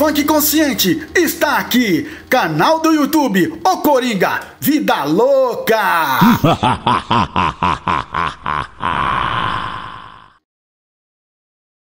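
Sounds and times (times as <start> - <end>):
man laughing: 5.9 - 10.3.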